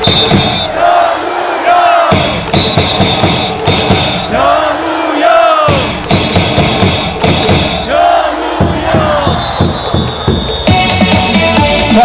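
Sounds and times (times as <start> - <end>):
crowd shouting along: 0.0 - 10.3
cheer song over stadium speakers: 0.0 - 12.0
cheer sticks and drums beating: 0.0 - 12.0.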